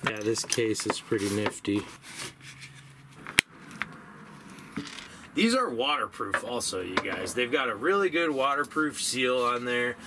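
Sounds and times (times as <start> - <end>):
small objects handled on table: 4.5 - 5.1.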